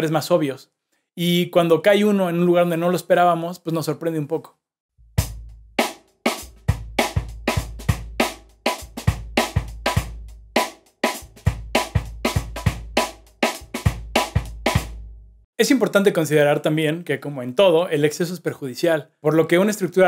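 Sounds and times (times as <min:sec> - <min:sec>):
bass drum kicks: 0:05.0 - 0:05.8.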